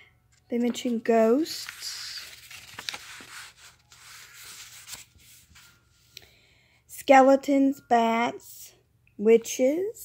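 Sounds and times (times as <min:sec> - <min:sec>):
book pages turning and rustling: 0:00.3 - 0:06.2.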